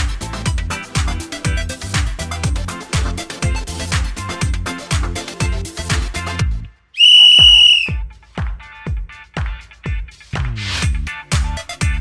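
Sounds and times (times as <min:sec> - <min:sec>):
shrill whistle blast: 0:07.0 - 0:08.0
dance music with kick drum: 0:07.3 - 0:10.1.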